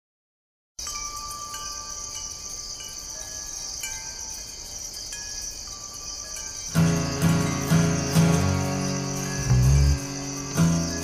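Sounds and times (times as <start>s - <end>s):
steady high hiss: 0.8s - 11.0s.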